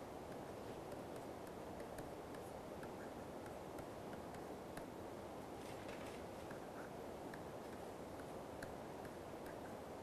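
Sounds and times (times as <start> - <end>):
steady low hiss: 0.0 - 10.0
stylus tapping on screen: 0.2 - 5.0, 6.4 - 10.0.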